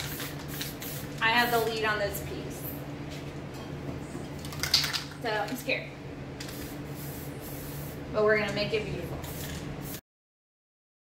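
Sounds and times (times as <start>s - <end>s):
spray-paint can hissing: 0.0s - 1.8s, 6.4s - 8.0s, 9.2s - 10.0s.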